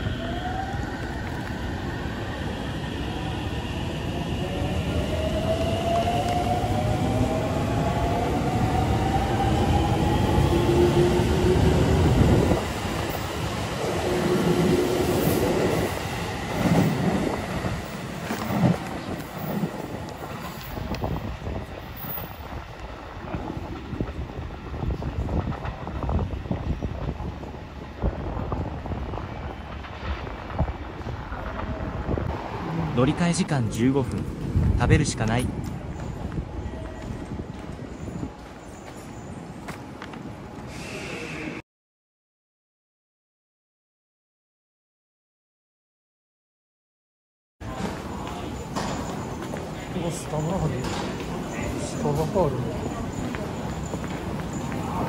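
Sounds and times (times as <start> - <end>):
train cars clattering past: 11.5 - 40.7, 47.6 - 55.0.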